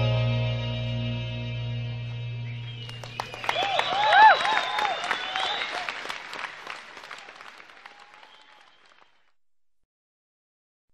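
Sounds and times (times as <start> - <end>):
audience applauding: 2.6 - 9.4
audience shouts: 3.2 - 8.7.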